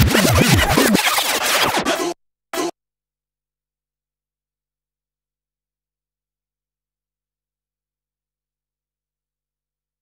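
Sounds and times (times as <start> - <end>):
record scratching: 0.0 - 2.7
electronic music: 0.0 - 2.8.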